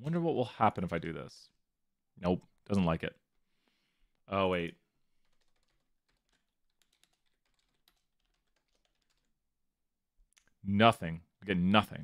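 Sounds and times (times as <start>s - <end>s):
faint keyboard typing: 4.1s - 9.4s.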